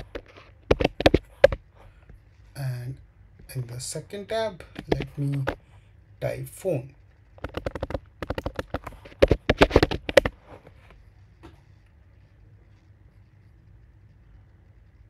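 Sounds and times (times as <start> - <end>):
faint low hum: 0.0 - 15.0.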